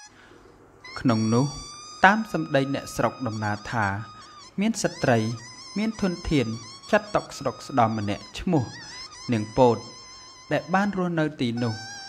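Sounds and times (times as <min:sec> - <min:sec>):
narrator speaking: 0:01.0 - 0:12.0.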